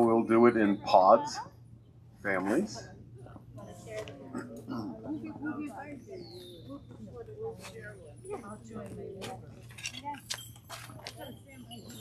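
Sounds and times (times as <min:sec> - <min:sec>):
group talking quietly: 0:00.0 - 0:12.0
light clinks and clicks: 0:07.7 - 0:12.0.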